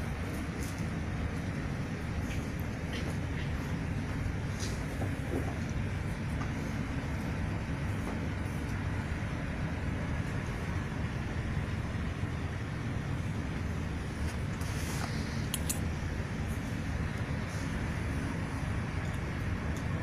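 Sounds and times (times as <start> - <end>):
low rumbling background noise: 0.0 - 20.0.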